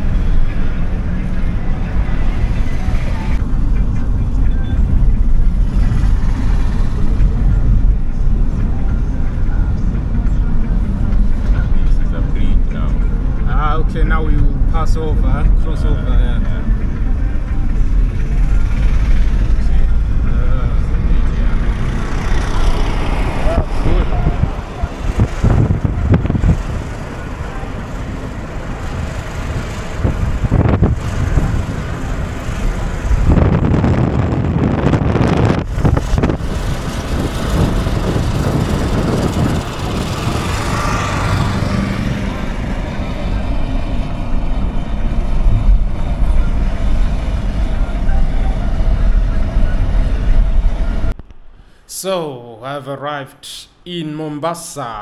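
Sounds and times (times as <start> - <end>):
car engine and tyre rumble: 0.0 - 51.6.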